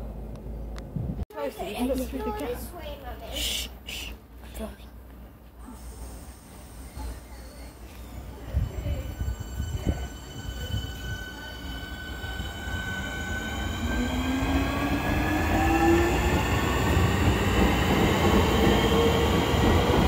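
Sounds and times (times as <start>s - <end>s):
train rumble: 5.0s - 20.0s.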